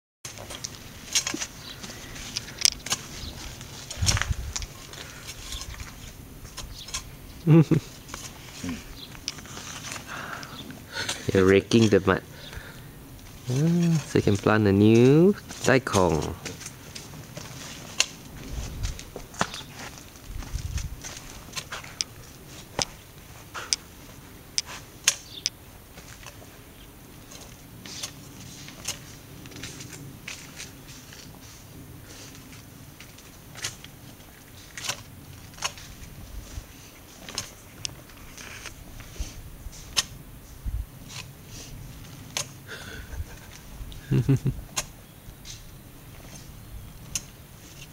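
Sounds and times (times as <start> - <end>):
hoe scraping and chopping soil: 0.3 - 7.2, 7.9 - 12.7, 13.3 - 23.9
rake scraping damp soil: 0.3 - 47.9.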